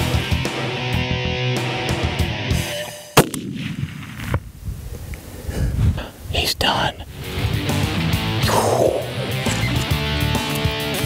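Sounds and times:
rolling echo of gunshot: 0:03.2 - 0:04.4
rifle shot: 0:03.2 - 0:04.5.

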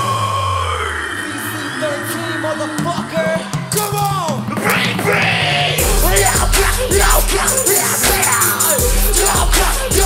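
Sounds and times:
loud band music through pa: 0:00.0 - 0:10.0
deep bass note: 0:05.7 - 0:07.6.

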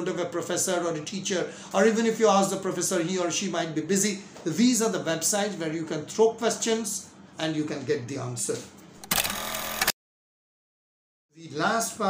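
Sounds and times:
harsh buzzing burst: 0:09.0 - 0:09.9.

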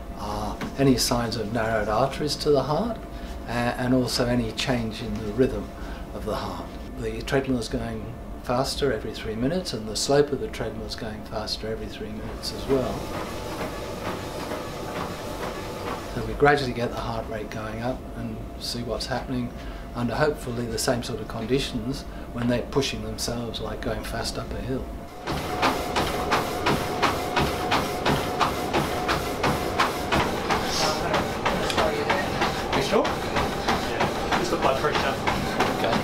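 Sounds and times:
treadmill belt and motor: 0:09.4 - 0:24.5, 0:25.1 - 0:36.0.

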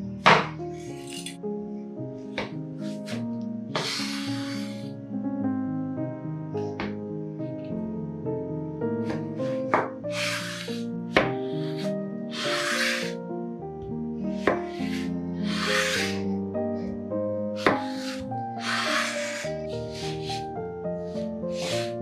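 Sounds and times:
soft instrumental music: 0:00.0 - 0:22.0
knife slicing cucumber: 0:17.6 - 0:20.4.

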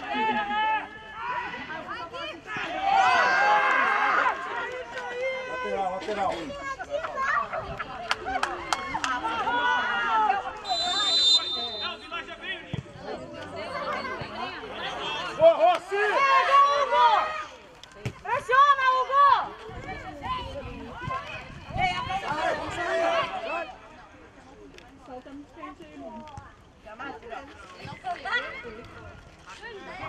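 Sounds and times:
players shouting: 0:00.0 - 0:06.0, 0:08.2 - 0:23.8
high whistle blast: 0:10.7 - 0:12.2.

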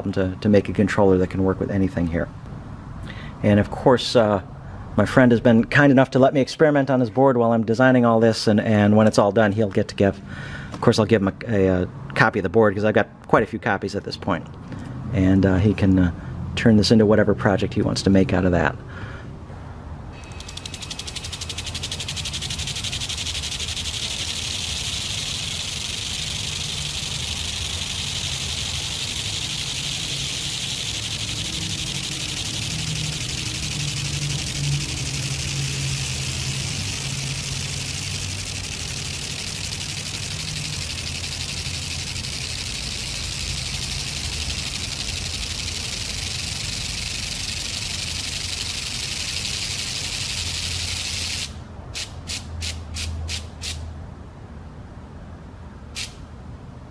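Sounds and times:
separate clicks: 0:20.2 - 0:51.5.

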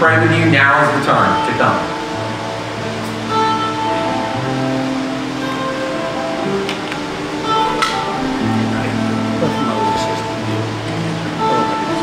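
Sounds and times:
electric guitar: 0:00.0 - 0:12.0
live band slow instrumental: 0:00.0 - 0:12.0.

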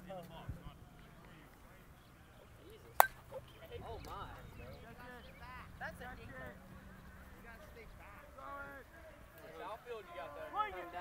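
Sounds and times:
bat striking softball: 0:03.0 - 0:03.4.

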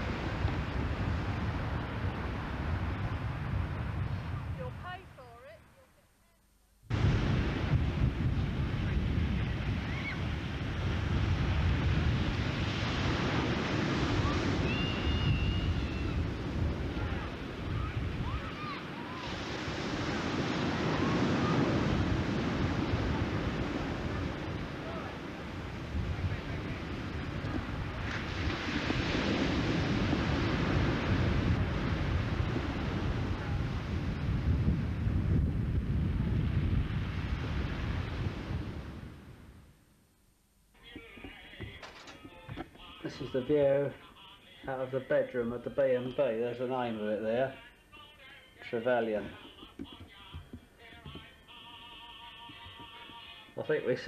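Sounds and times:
sea waves breaking on shore: 0:00.0 - 0:05.2, 0:06.9 - 0:39.5
wind buffeting microphone: 0:00.0 - 0:05.3, 0:06.9 - 0:39.6.

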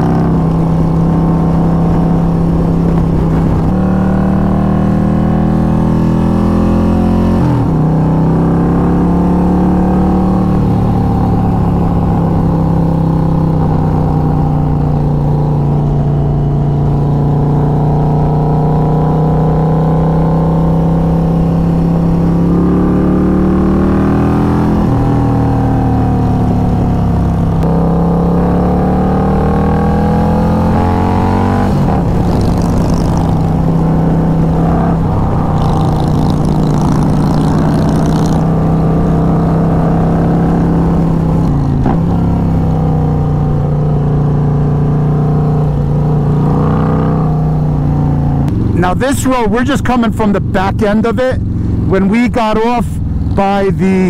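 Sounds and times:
motorcycle engine running: 0:00.0 - 0:54.0.

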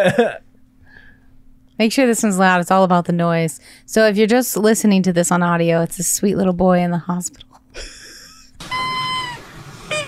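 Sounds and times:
high squeaky whistle: 0:08.6 - 0:10.0.

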